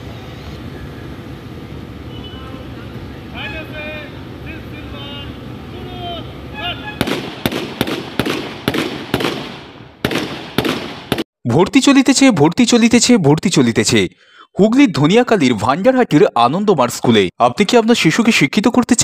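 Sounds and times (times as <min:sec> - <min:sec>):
outdoor background noise: 0:00.0 - 0:13.9
rifle shots: 0:07.0 - 0:11.3.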